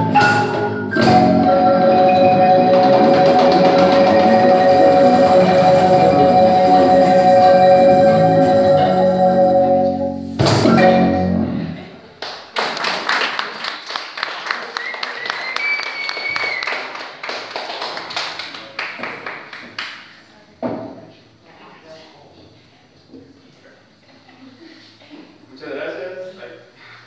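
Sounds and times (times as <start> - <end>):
marimba ensemble playing: 0.0 - 11.8
audience clapping: 2.9 - 5.5, 12.2 - 20.1
rising whistle: 14.8 - 16.8.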